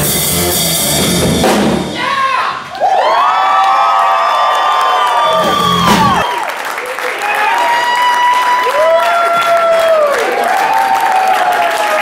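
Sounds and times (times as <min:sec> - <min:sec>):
voices whooping cheer: 0:02.0 - 0:12.0.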